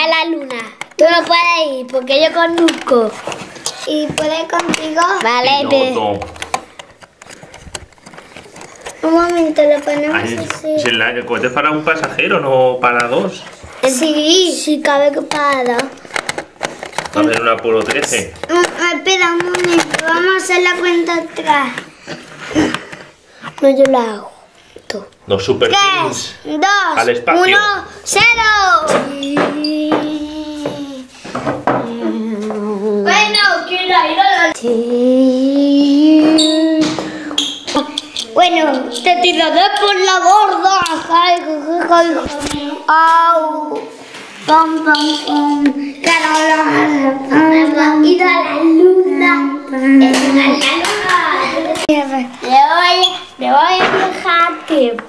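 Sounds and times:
plastic toy clicks and scrapes: 6.2s - 10.6s, 15.2s - 24.0s.

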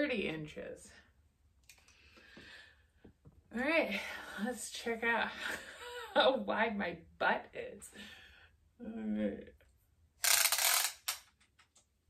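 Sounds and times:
tape measure rasping: 10.2s - 11.3s.

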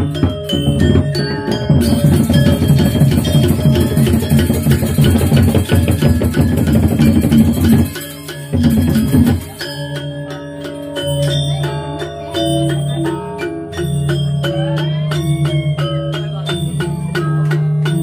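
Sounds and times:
gamelan playing: 0.0s - 18.0s.

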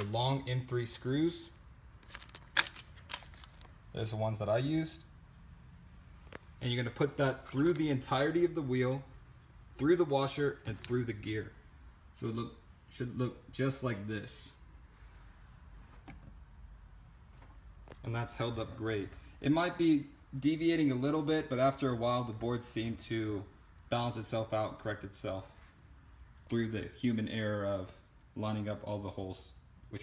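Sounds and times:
faint high whine: 0.0s - 30.0s.

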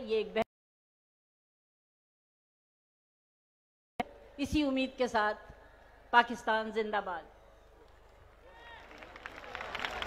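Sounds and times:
crowd cheering and clapping: 8.0s - 10.0s.

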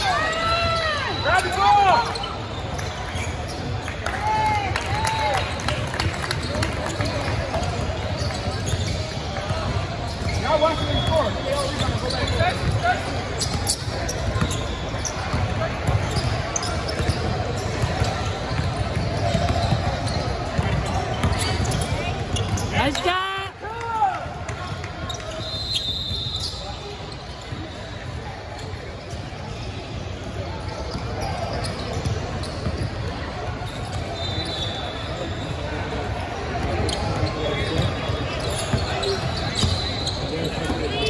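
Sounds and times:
basketballs bouncing on hardwood floor: 15.3s - 22.7s.

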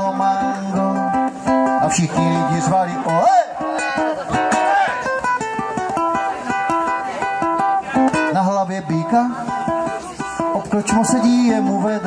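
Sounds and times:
guitar picked melody: 0.0s - 12.0s.

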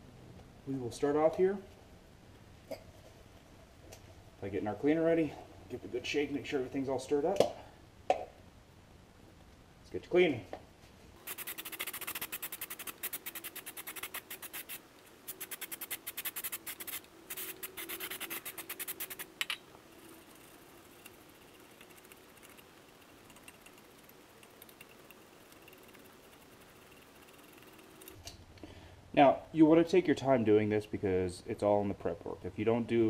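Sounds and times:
toothbrush scrubbing metal: 11.2s - 28.2s.

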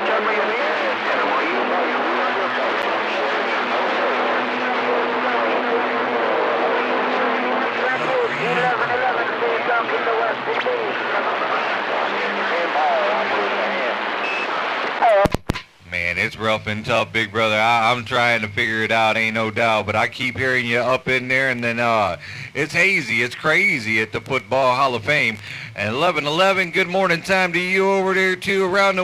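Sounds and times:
faint distant radio voices: 0.0s - 15.3s
radio static: 0.0s - 28.6s.

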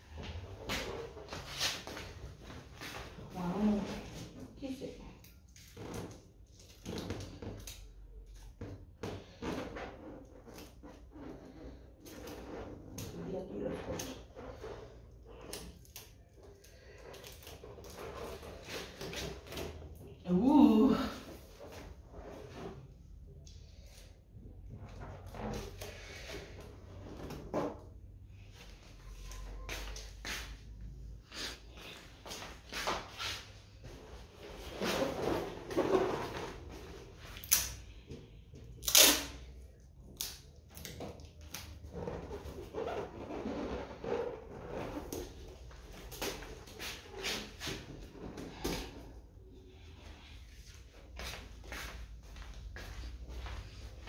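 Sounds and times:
hands handling balloon and tape: 0.1s - 20.1s, 21.3s - 52.0s.

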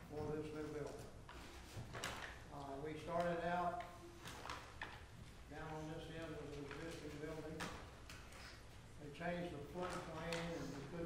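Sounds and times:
man speaking: 2.5s - 4.0s, 5.5s - 7.8s, 9.0s - 11.0s.

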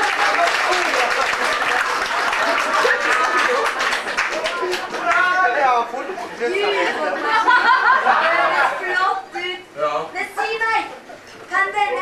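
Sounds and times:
performers speaking on stage: 2.8s - 12.0s.

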